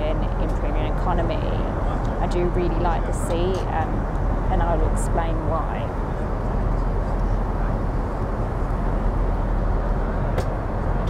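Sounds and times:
airplane cabin noise: 0.0s - 11.0s.

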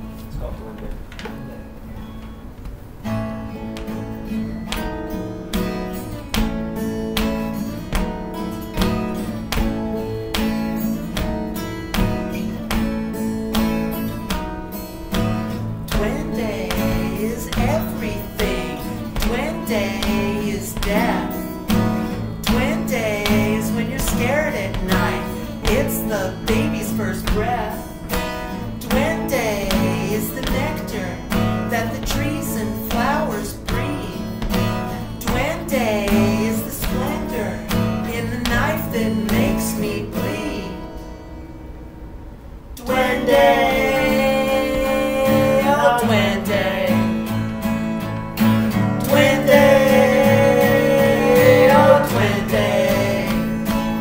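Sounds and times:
acoustic guitar picking: 0.0s - 54.0s
acoustic guitar strumming: 0.0s - 54.0s.

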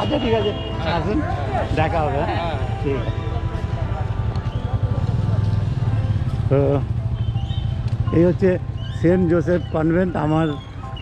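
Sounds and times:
motorcycle passing: 0.0s - 11.0s
traffic rumble: 0.0s - 11.0s.

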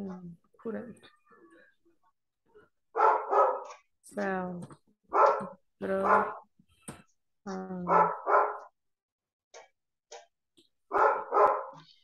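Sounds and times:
dog barking: 2.9s - 3.9s, 5.1s - 6.5s, 7.9s - 8.7s, 10.9s - 11.9s.

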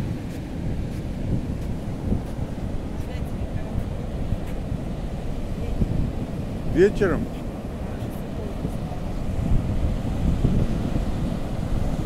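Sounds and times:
ocean surf rumbling: 0.0s - 12.0s
wind buffeting microphone: 0.0s - 12.0s.

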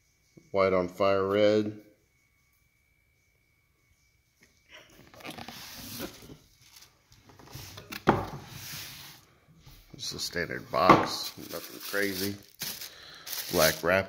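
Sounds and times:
paper rustling and crinkling: 5.0s - 9.1s, 11.2s - 14.0s
cardboard box being opened: 5.1s - 6.9s.

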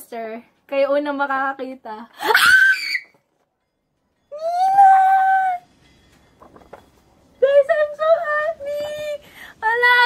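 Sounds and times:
woman squealing: 2.2s - 3.1s
paper crinkling: 6.0s - 7.2s.

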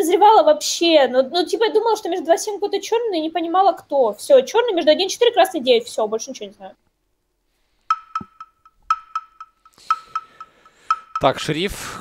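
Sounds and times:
ticking sound cue: 7.9s - 11.7s.

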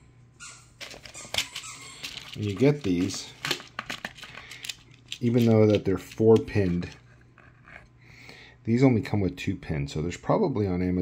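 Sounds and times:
dog whining: 0.4s - 2.3s.

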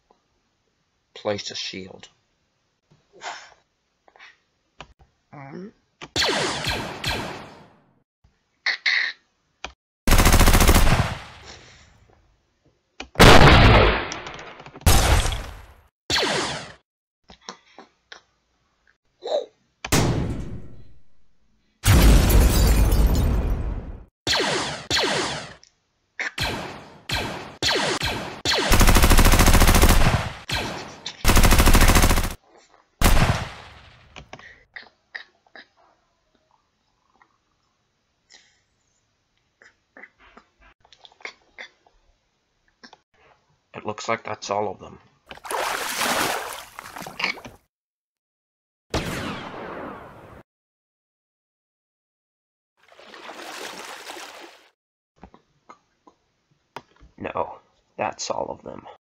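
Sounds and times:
blaster shots zapping: 6.2s - 7.6s, 16.1s - 16.8s, 24.3s - 25.6s, 26.4s - 28.9s
rapid blaster fire: 6.2s - 7.7s, 10.1s - 11.6s, 16.1s - 16.8s, 24.3s - 25.6s, 26.4s - 32.4s, 33.0s - 34.1s.

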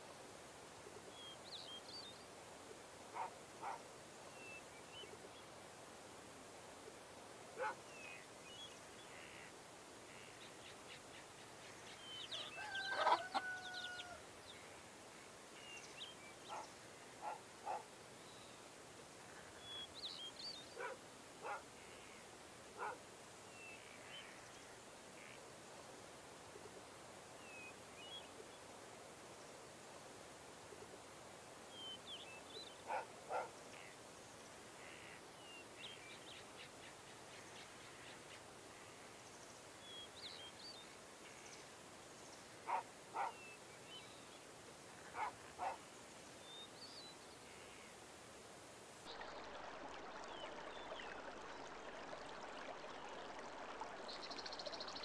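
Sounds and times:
faint birdsong chirps: 0.9s - 29.8s, 30.6s - 55.0s
dog barking: 3.1s - 3.8s, 7.6s - 7.8s, 16.5s - 17.9s, 20.8s - 21.6s, 22.8s - 23.0s, 32.9s - 33.5s, 42.7s - 43.4s, 45.2s - 45.8s
distant animal calls: 12.4s - 14.2s, 16.5s - 17.8s, 32.9s - 33.9s, 42.7s - 43.4s, 45.0s - 45.8s.

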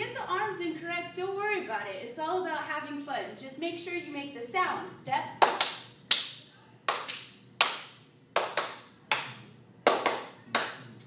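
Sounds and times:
hand claps with echo: 5.4s - 11.0s.

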